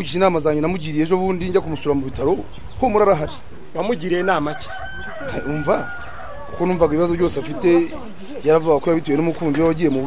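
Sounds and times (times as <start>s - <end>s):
rooster crowing: 4.1s - 7.6s.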